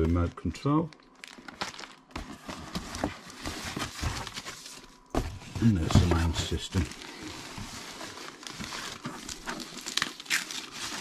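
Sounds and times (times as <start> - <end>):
packaging rustling and crinkling: 0.0 - 11.0.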